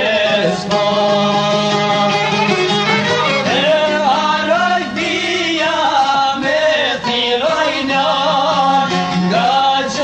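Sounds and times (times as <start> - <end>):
instrumental accompaniment: 0.0 - 10.0
men singing: 0.0 - 10.0.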